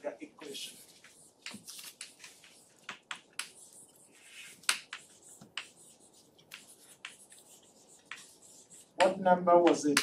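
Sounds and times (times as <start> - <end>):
chalk scratching on chalkboard: 0.4 - 9.2
chalk tapping on chalkboard: 0.9 - 10.0.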